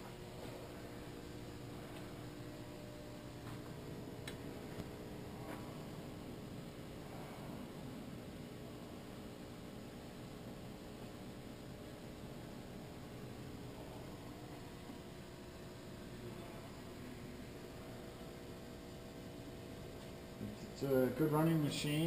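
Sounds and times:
low steady tones: 0.0 - 22.0
machine shop hum and hiss: 0.0 - 22.0.

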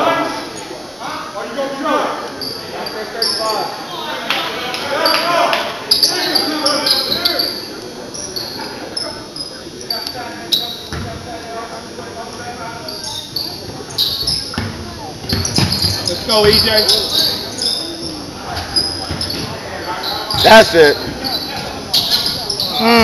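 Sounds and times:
crowd voices: 0.0 - 23.0
sneakers squeaking: 2.3 - 23.0
ball bouncing on hardwood court: 10.9 - 11.2, 13.7 - 17.2, 18.6 - 19.6.

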